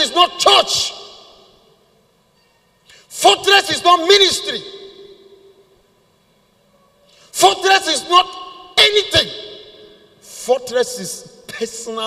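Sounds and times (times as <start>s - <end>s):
man speaking in reverberant hall: 0.0s - 2.1s, 2.8s - 5.9s, 6.9s - 12.0s
faint steady hum: 0.0s - 12.0s.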